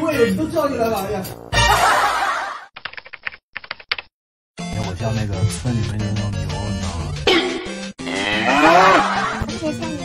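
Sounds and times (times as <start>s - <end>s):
music: 0.0s - 2.2s, 4.6s - 10.0s.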